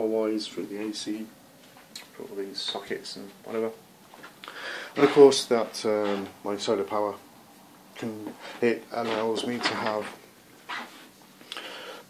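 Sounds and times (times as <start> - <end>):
soft handling rustle: 1.6 - 7.2, 7.9 - 11.4.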